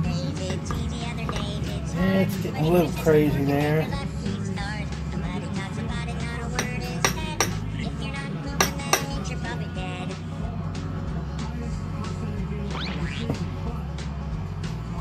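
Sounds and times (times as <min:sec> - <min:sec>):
music with steady beat: 0:00.0 - 0:15.0
knife clinking on glass dish: 0:06.6 - 0:07.6, 0:08.6 - 0:09.2.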